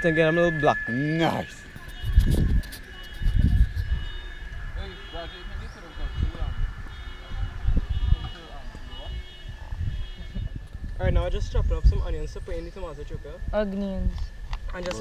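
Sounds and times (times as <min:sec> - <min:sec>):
steady high tone: 0:00.0 - 0:10.2, 0:10.8 - 0:15.0
faint distant voices: 0:00.1 - 0:14.0.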